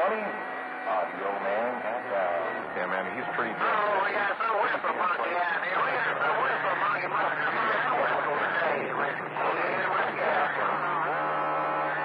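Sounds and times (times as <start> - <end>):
steady low hum: 0.0 - 12.0
steady radio tone: 0.0 - 12.0
garbled voices over radio: 0.9 - 12.0.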